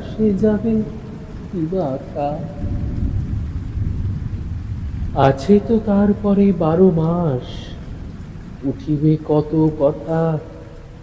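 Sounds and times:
man reciting poetry: 0.0 - 3.0, 5.1 - 8.0, 8.6 - 11.0
low rumble: 0.0 - 9.1
steady rain: 0.0 - 11.0.

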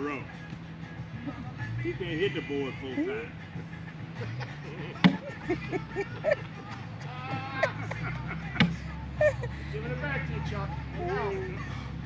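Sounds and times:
people chatting: 9.2 - 11.7.

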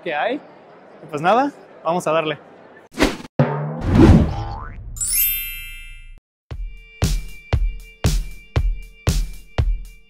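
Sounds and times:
rising swoop: 3.0 - 4.5
springy boing: 3.4 - 4.8.

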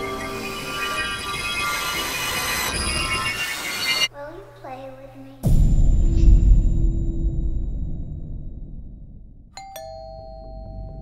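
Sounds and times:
low rumble: 5.4 - 9.6
two-tone doorbell chime: 9.6 - 11.0.

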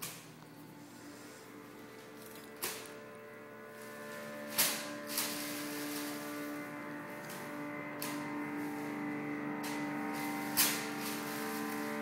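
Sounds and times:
electronic drone: 0.4 - 12.0.

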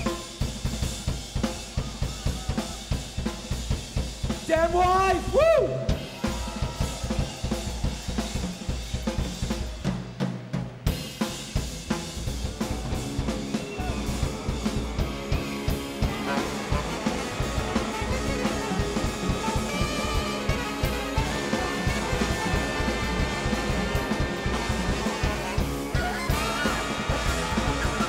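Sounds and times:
big band held notes: 0.0 - 28.0
drum solo: 0.0 - 28.0
horns playing: 13.6 - 28.0.

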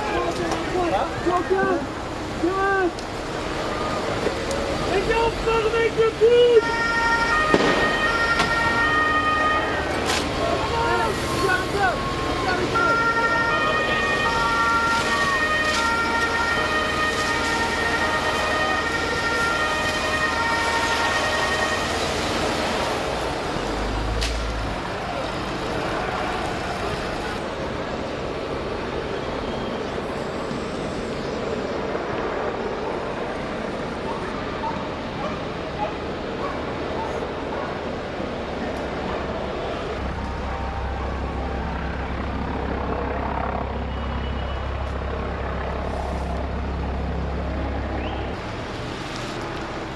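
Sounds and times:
traffic noise: 0.0 - 49.9
two-tone police siren: 6.5 - 25.2, 39.8 - 48.4.

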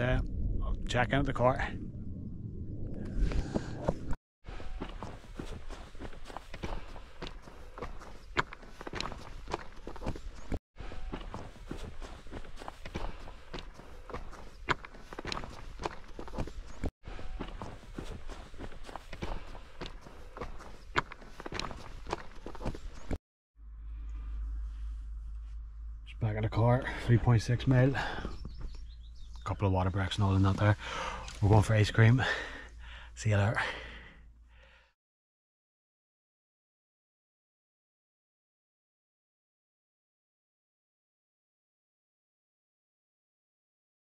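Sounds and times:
footsteps on mountain path: 4.5 - 23.2, 26.8 - 33.0.

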